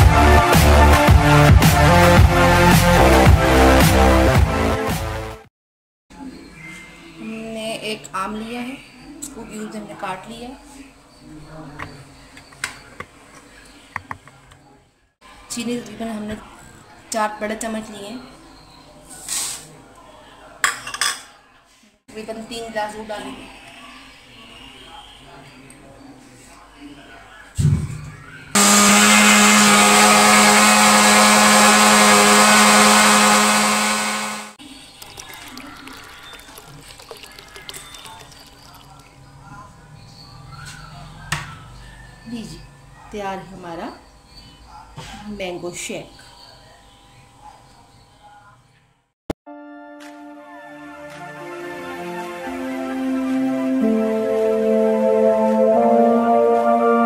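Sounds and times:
blender motor running: 0:28.6 - 0:37.9
liquid pouring into a glass: 0:34.7 - 0:39.2.

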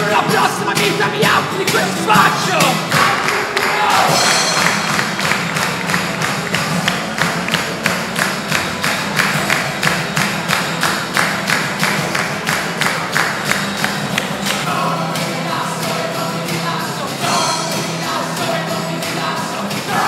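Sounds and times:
acoustic guitars: 0:00.0 - 0:20.0
sharp percussive strikes: 0:00.0 - 0:20.0.

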